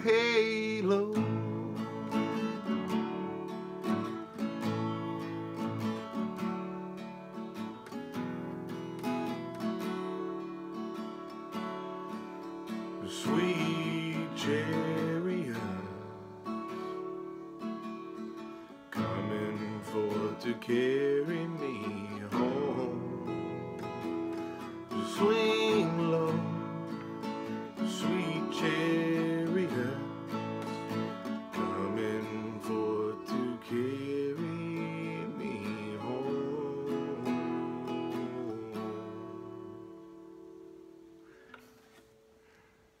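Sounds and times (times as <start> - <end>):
acoustic guitar strumming chords: 0.0 - 42.9.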